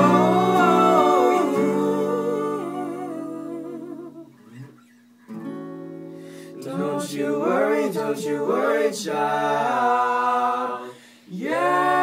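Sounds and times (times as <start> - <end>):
voices humming in harmony: 0.0 - 4.3.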